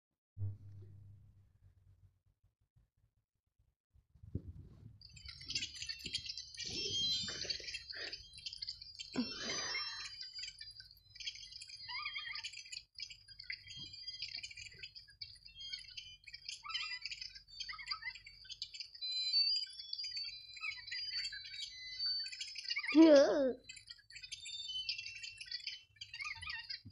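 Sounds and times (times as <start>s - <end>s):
small birds chirping: 5.0s - 26.9s.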